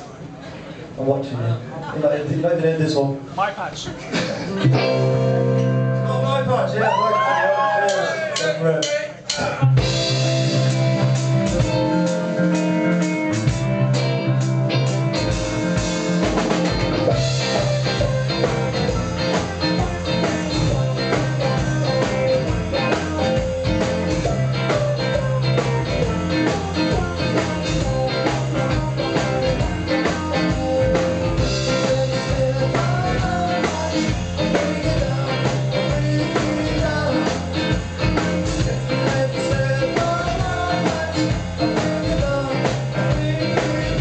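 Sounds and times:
electric guitars playing: 0:04.4 - 0:08.7, 0:09.4 - 0:44.0
drum kit beat: 0:04.5 - 0:06.2, 0:06.8 - 0:44.0.

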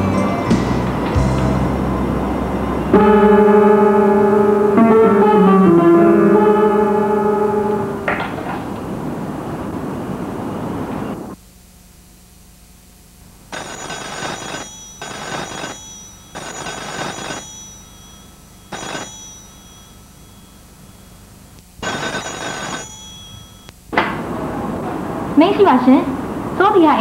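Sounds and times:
music: 0:00.0 - 0:08.1
telephone ringing: 0:13.5 - 0:23.8.

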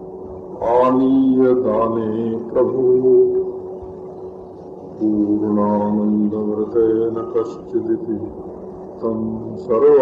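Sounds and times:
man chanting a held note: 0:00.6 - 0:03.8, 0:04.9 - 0:10.0.

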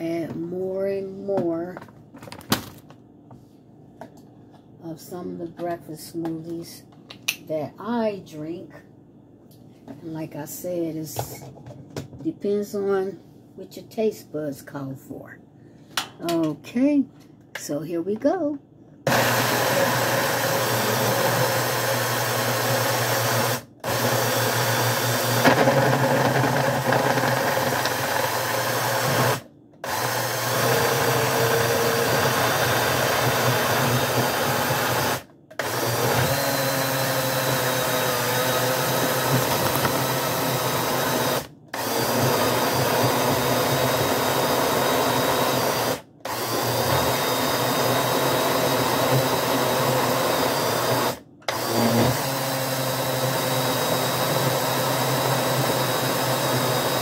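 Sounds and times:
blender motor running: 0:19.1 - 0:57.0.

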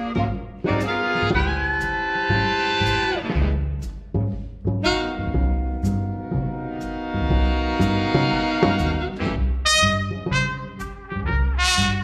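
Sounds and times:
jazz big band holding chord: 0:00.0 - 0:12.0
plucked upright bass: 0:00.0 - 0:12.0.

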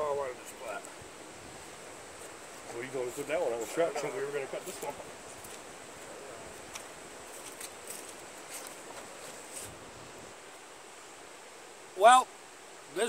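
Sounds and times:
outdoor background hiss: 0:00.0 - 0:13.0.

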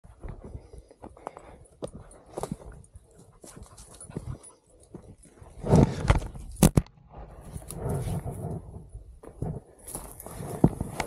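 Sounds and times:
footsteps through dry brush: 0:00.1 - 0:06.3, 0:09.2 - 0:11.0.

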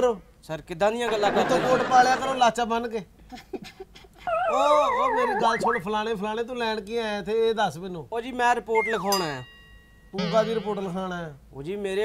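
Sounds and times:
whining voice: 0:04.2 - 0:05.9, 0:08.8 - 0:09.4.

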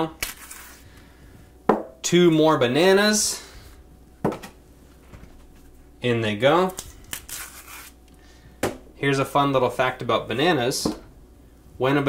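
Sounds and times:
banana peel tearing rustle: 0:00.2 - 0:00.8, 0:06.7 - 0:08.0.

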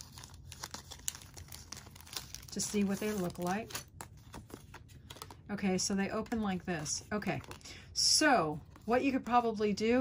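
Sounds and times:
plastic wrapper crinkling and tearing: 0:00.0 - 0:05.5.

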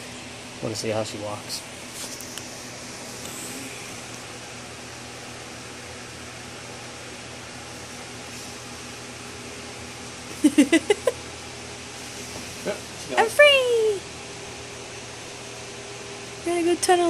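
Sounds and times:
room hum: 0:00.0 - 0:17.0
person laughing: 0:10.3 - 0:11.2.

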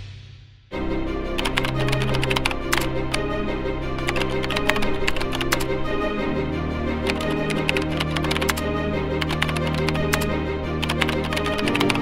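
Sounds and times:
background music low chord: 0:00.7 - 0:12.0
keyboard typing clicks: 0:01.4 - 0:03.2, 0:04.0 - 0:05.7, 0:07.1 - 0:08.6, 0:09.2 - 0:12.0.

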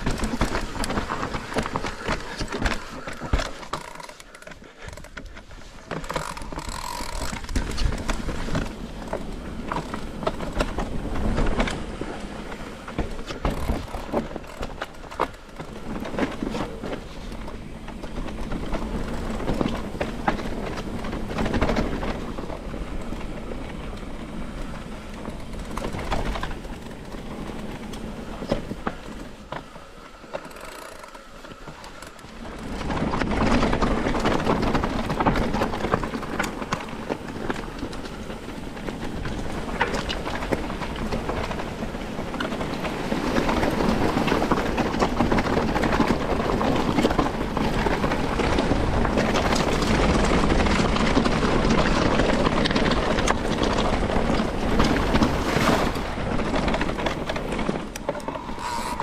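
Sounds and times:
bike rattling and clicking: 0:00.0 - 0:59.0
bike tyres on rough ground: 0:00.0 - 0:59.0.

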